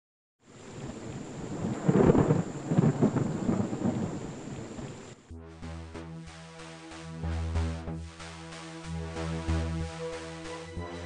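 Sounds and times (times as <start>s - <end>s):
rain hissing: 0.4s - 11.0s
rolling thunder: 0.6s - 5.3s.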